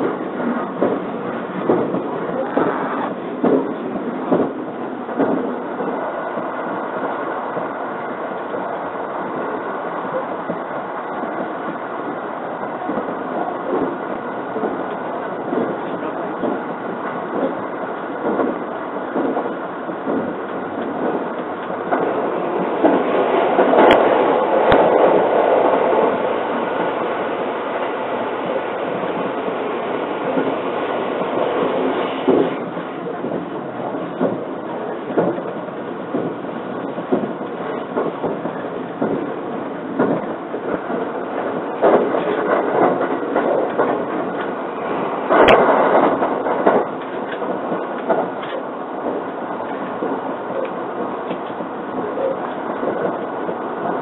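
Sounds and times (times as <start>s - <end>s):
train cabin rumble: 0.0s - 54.0s
rail-joint clicks: 14.6s - 51.6s.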